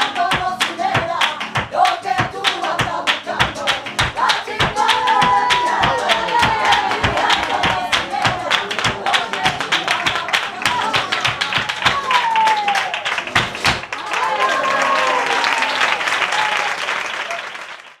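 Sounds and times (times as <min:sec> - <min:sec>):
applause and cheering: 0:00.0 - 0:18.0
fast rhythmic hand-clapping: 0:00.0 - 0:18.0
voices calling out: 0:05.1 - 0:10.0.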